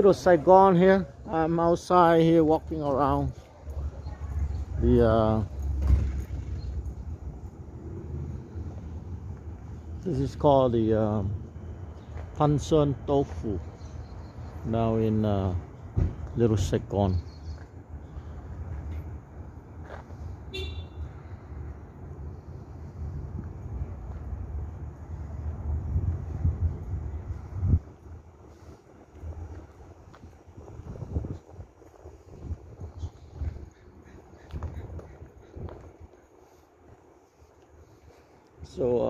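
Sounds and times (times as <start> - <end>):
low street rumble: 0.0 - 39.0
car horn beep: 20.5 - 21.1.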